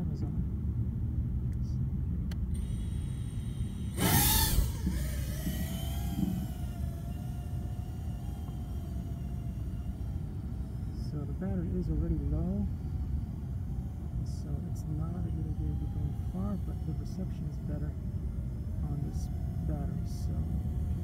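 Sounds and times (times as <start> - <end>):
constant low rumble: 0.0 - 21.0
drone motors whining: 2.3 - 21.0.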